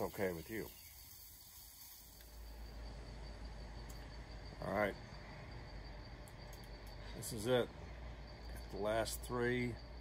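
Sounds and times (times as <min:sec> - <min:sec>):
night insects trilling: 0:00.0 - 0:10.0.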